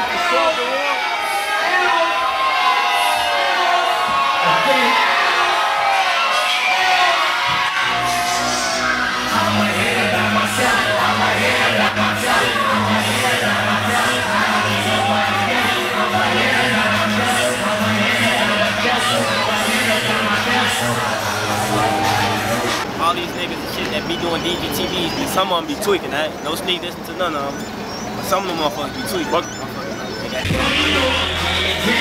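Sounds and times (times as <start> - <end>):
crowd yelling and whooping: 0.0 - 22.9, 27.7 - 32.0
hip-hop vocals over music: 9.1 - 22.9, 30.4 - 32.0
heavy bass beat: 30.4 - 32.0.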